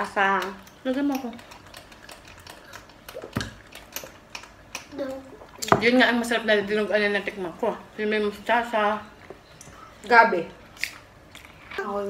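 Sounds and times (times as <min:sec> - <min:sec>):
mouth clicks and smacks chewing: 0:00.2 - 0:05.7, 0:10.7 - 0:11.6.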